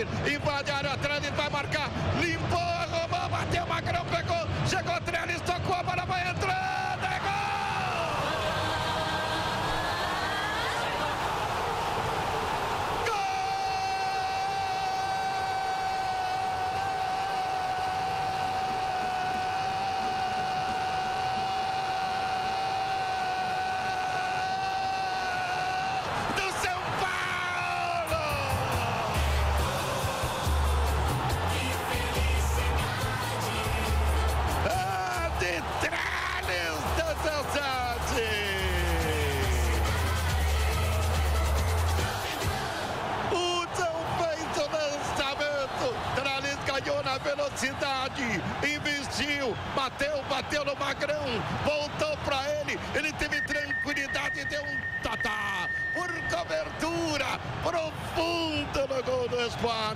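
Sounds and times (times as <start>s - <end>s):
narrator shouting goal: 12.8s - 29.4s, 34.6s - 39.8s.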